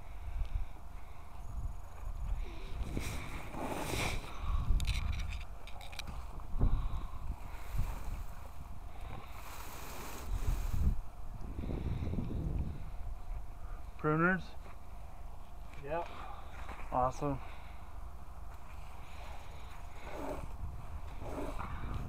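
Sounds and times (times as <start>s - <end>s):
wind rumble on microphone: 0.0s - 13.7s, 19.0s - 22.0s
rustling of dry grass: 0.9s - 13.9s
rake scraping: 2.8s - 4.3s, 18.6s - 22.0s.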